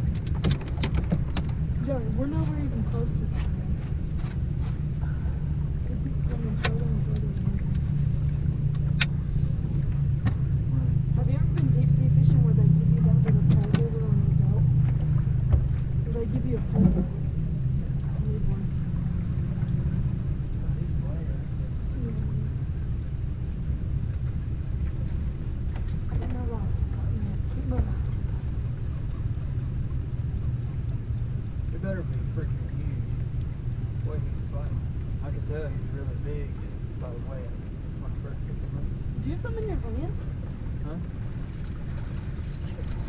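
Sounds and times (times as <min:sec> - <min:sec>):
boat motor humming: 0:00.0 - 0:43.0.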